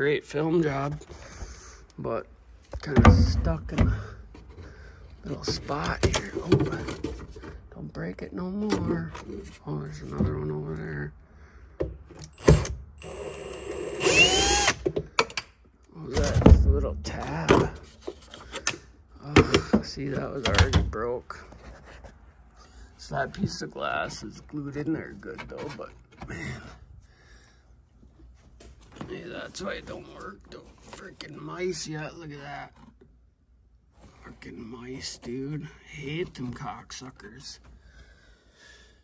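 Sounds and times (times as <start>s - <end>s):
drill motor whir: 12.2s - 14.8s.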